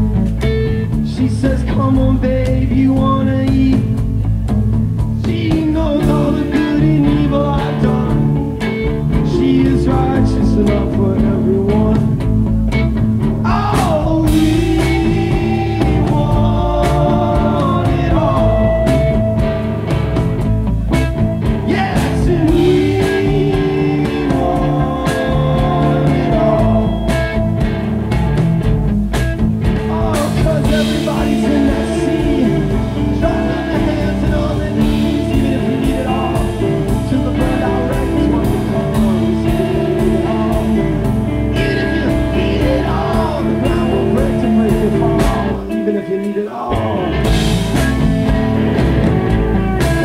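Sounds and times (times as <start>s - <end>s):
bass guitar: 0.0s - 50.0s
drums beating: 0.0s - 50.0s
electric guitars: 0.0s - 50.0s
live rock band playing: 0.0s - 50.0s
man singing lead vocal: 0.9s - 4.1s, 5.1s - 12.4s, 13.4s - 19.5s, 21.4s - 27.7s, 29.8s - 47.8s.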